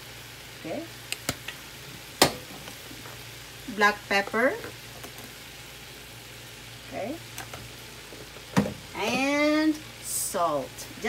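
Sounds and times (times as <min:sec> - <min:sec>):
meat sizzling in a wok: 0:00.0 - 0:11.0.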